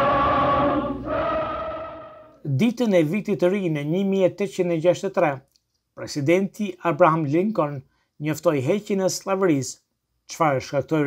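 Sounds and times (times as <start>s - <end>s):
choir singing held notes: 0.0s - 2.4s.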